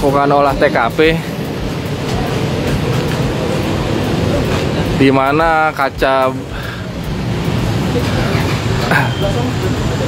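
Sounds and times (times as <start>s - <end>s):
faint voices: 0.0s - 10.0s
street noise rumble: 0.0s - 10.0s.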